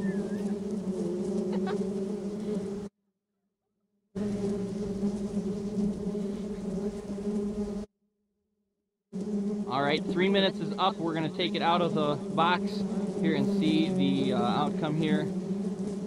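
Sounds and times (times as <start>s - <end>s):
bee swarm buzzing: 0.0s - 2.9s, 4.2s - 7.9s, 9.1s - 16.0s.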